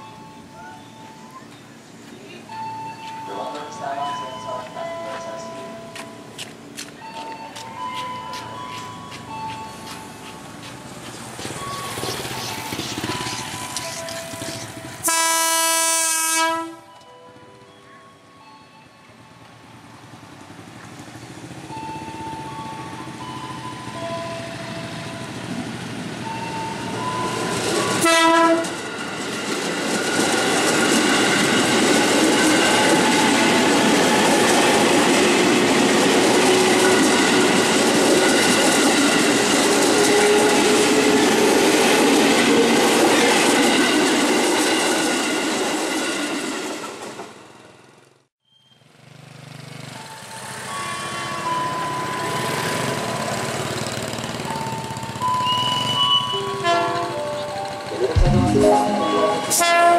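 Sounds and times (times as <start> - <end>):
level crossing warning tones: 0.0 - 6.3, 11.3 - 15.3, 55.6 - 59.9
electric train passing: 0.0 - 48.3, 49.2 - 59.9
train horn blast: 15.0 - 16.9, 28.0 - 28.8, 56.6 - 57.1, 59.0 - 59.9.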